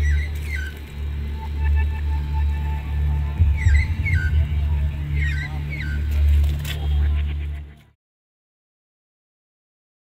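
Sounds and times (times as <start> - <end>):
uneven low rumble: 0.0 - 7.9
deep slow bass throb: 1.2 - 6.4.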